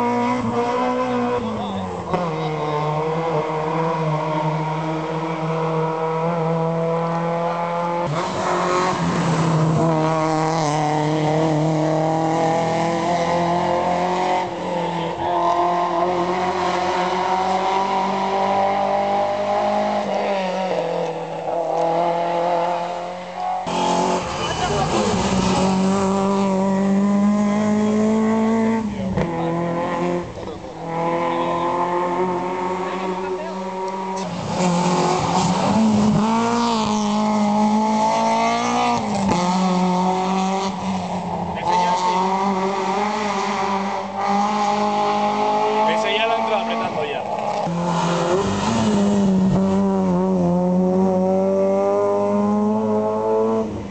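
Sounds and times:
rally car engine revving: 0.0 - 53.9.

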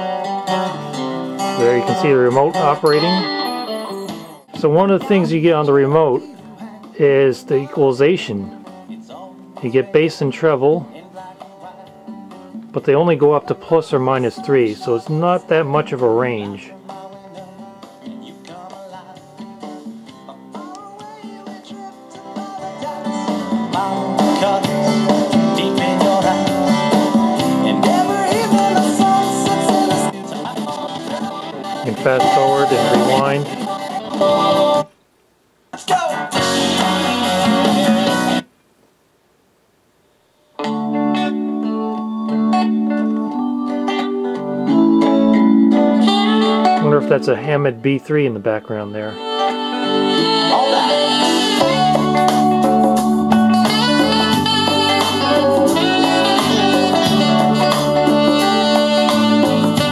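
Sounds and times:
organ chords: 0.0 - 6.3, 11.6 - 34.9, 40.6 - 59.9
band music with guitar: 0.0 - 34.9, 35.8 - 38.5, 40.6 - 59.9.

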